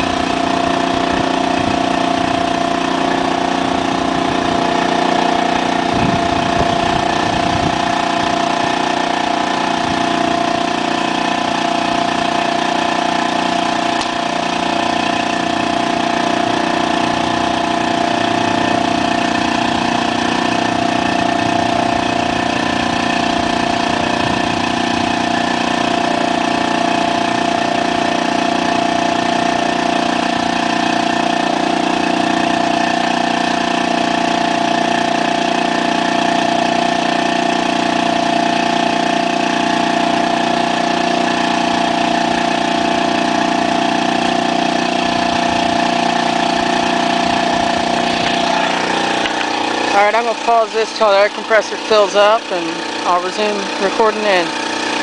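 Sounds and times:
air compressor droning: 0:00.0 - 0:55.0.

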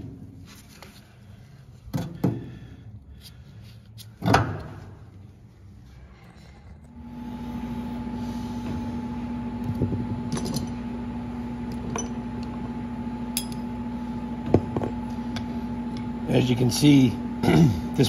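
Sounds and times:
steady hum: 0:00.0 - 0:18.0.

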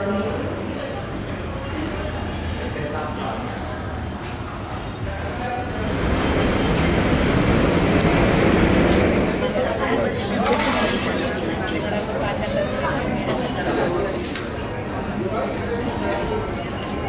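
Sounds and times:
escalator rumbling: 0:05.6 - 0:11.7.

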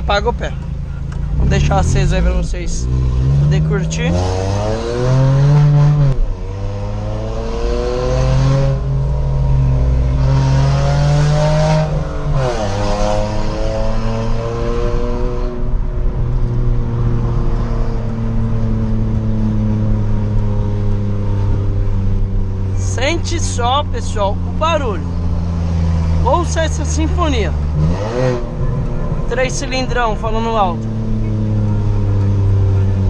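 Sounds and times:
car engine accelerating hard: 0:00.0 - 0:33.0.

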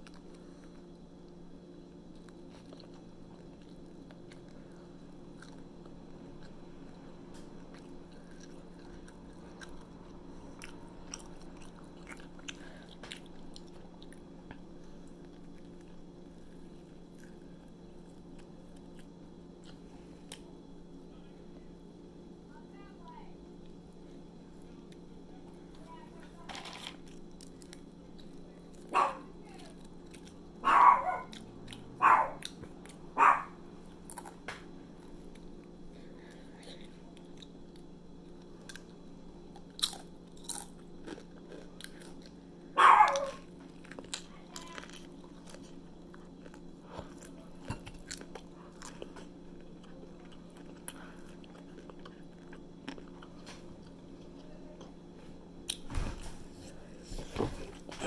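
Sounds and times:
chewing food: 0:00.0 - 0:21.1, 0:23.5 - 0:58.0
crunching chips: 0:26.4 - 0:42.4, 0:43.0 - 0:54.5.

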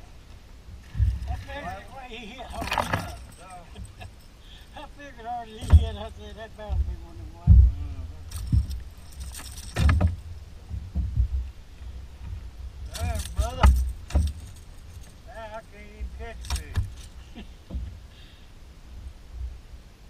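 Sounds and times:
light rattling of fishing lure: 0:00.8 - 0:04.9, 0:08.2 - 0:10.4, 0:12.2 - 0:17.8.

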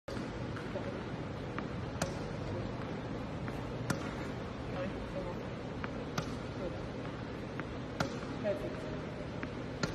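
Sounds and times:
racket striking ball: 0:00.1 - 0:00.8, 0:01.5 - 0:04.8, 0:05.7 - 0:09.9
tennis ball knocks: 0:01.9 - 0:02.4, 0:03.7 - 0:04.4, 0:07.9 - 0:08.4.

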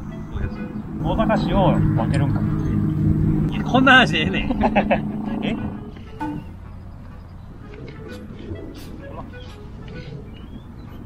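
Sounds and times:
background music: 0:00.0 - 0:11.0
people laughing together: 0:04.3 - 0:06.0.

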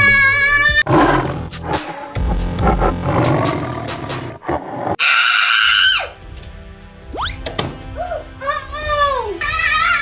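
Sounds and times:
background music: 0:00.0 - 0:10.0
tiger roar: 0:00.8 - 0:05.0.

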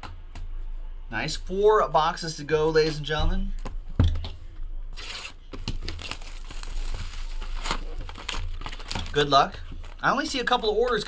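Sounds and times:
plastic shrink wrap tearing: 0:05.0 - 0:10.1.

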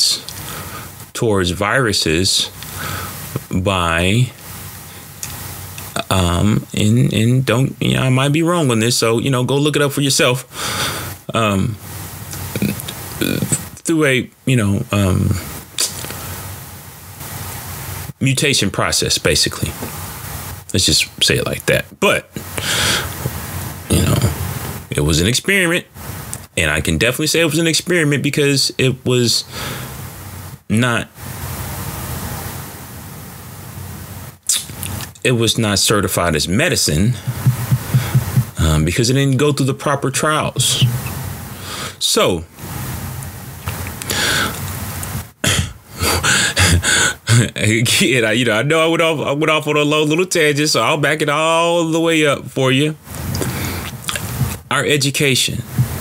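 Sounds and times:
steady broadband hiss: 0:00.0 - 0:56.0
man breathy vocal burst: 0:22.4 - 0:23.2, 0:37.2 - 0:38.6, 0:45.4 - 0:47.4
man clearing throat: 0:23.9 - 0:24.4, 0:45.4 - 0:47.5.

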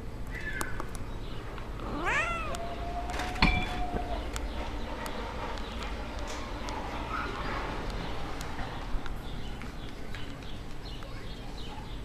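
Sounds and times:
cat meowing: 0:01.8 - 0:04.3.

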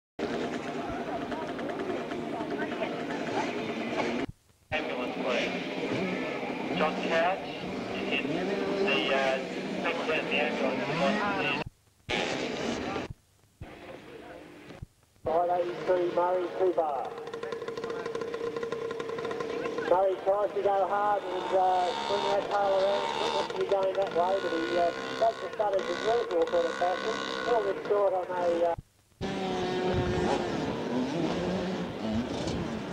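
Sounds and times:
motocross bike engines running: 0:00.2 - 0:32.9.

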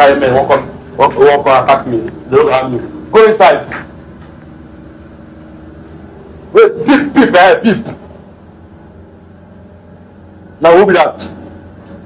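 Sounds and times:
steady background hum and rumble: 0:00.0 - 0:12.0.

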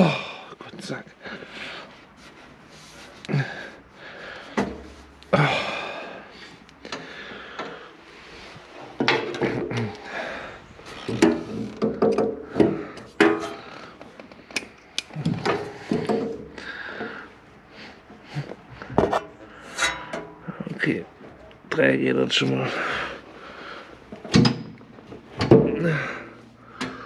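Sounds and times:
metal tools clinking and scraping: 0:08.8 - 0:10.0, 0:19.1 - 0:20.7.

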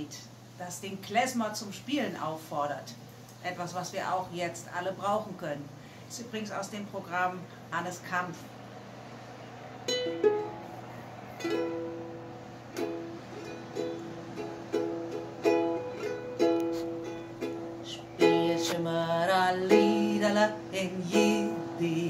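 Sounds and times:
ukulele chords strummed: 0:09.8 - 0:22.0
woman singing: 0:17.8 - 0:22.0.

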